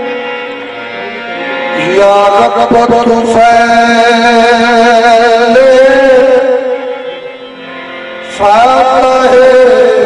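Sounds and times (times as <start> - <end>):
harmonium chords: 0.0 - 10.0
man singing: 1.7 - 7.5, 8.2 - 10.0.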